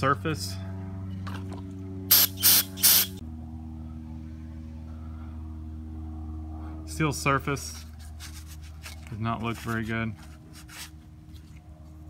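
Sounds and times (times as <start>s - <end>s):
steady low hum: 0.0s - 12.0s
loud hissing sprays: 2.1s - 3.2s.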